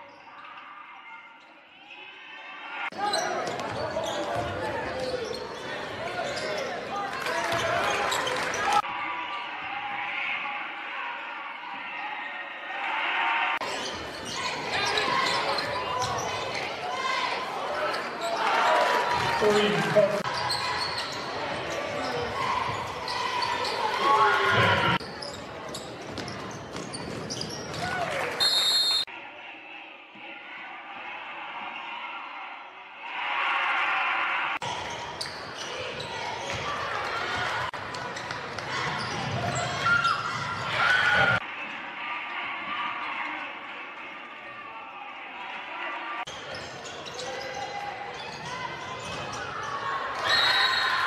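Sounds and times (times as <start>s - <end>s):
spectators' voices: 0.0s - 51.0s
basketball bouncing on court: 25.7s - 27.9s.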